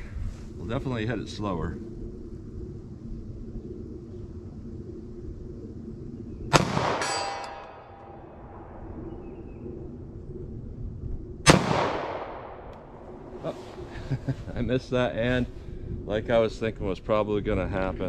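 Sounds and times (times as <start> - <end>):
pistol shots: 6.5 - 7.4, 11.5 - 12.6
steel target ringing clang: 6.5 - 8.0.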